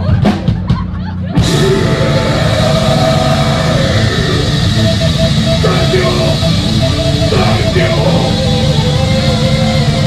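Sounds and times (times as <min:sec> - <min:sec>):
live metal band playing: 0:01.2 - 0:10.0.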